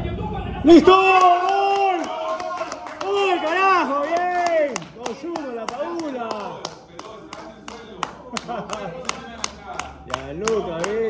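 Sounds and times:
person clapping hands: 0:01.2 - 0:11.0.

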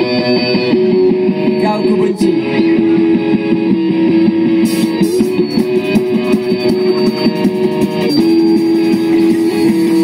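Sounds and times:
electric guitar: 0:00.0 - 0:10.0
rock band playing: 0:00.0 - 0:10.0.

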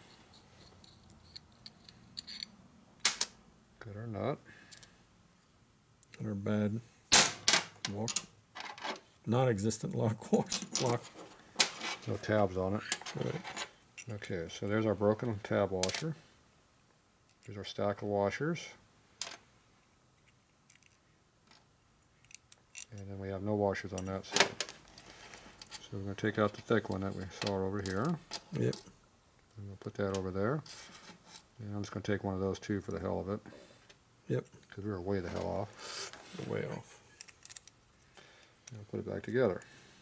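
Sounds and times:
clicks of metal parts handled: 0:00.6 - 0:03.4, 0:20.2 - 0:23.0, 0:37.2 - 0:37.8
metal washers clicking on bench: 0:00.6 - 0:03.4
man speaking: 0:09.3 - 0:11.1, 0:12.0 - 0:13.5, 0:14.1 - 0:16.2, 0:25.8 - 0:28.9, 0:34.3 - 0:37.0, 0:38.7 - 0:39.6.

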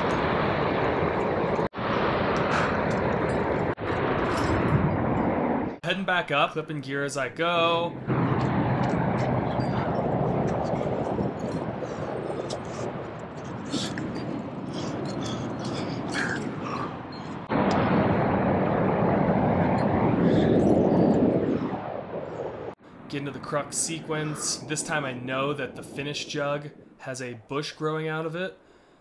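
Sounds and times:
wind noise on microphone: 0:00.0 - 0:05.8, 0:07.9 - 0:27.0.

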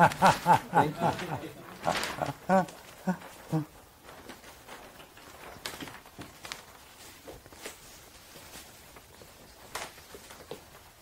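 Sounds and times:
brief laugh: 0:00.0 - 0:03.7
people murmuring: 0:00.0 - 0:03.8.

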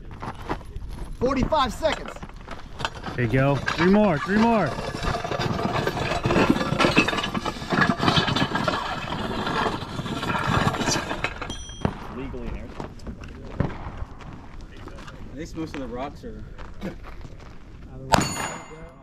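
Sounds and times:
sled scraping across gravel: 0:00.0 - 0:18.0.

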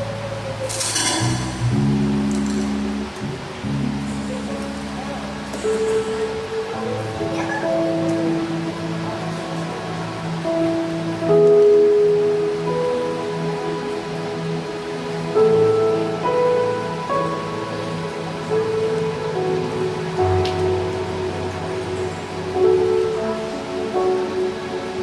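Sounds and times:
worship band playing slow music: 0:00.0 - 0:25.0.

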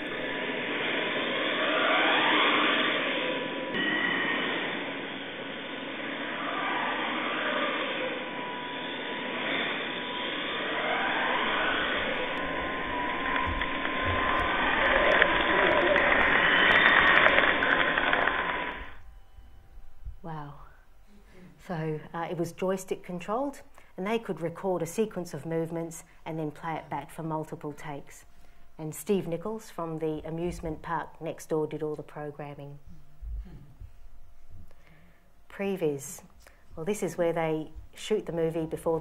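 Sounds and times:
dull machinery noise with whines: 0:00.0 - 0:39.0.

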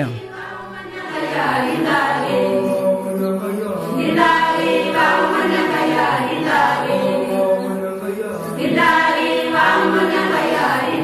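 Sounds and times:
choir singing long held notes: 0:00.0 - 0:11.0.

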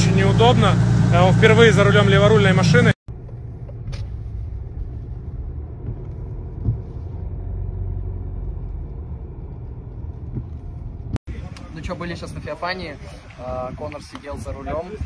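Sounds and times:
car engine and road rumble: 0:00.0 - 0:15.0
car bump: 0:05.7 - 0:07.0.

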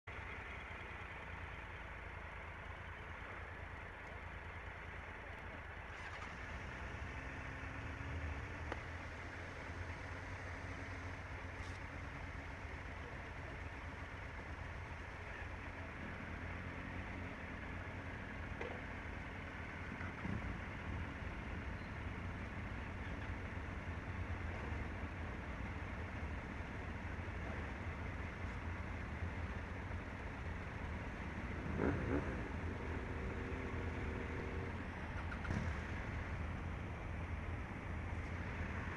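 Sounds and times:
motorcycle engines idling: 0:00.0 - 0:38.9.

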